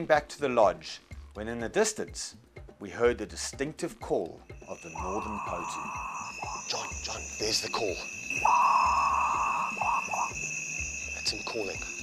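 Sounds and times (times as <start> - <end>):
bird guttural call: 4.7 - 11.2.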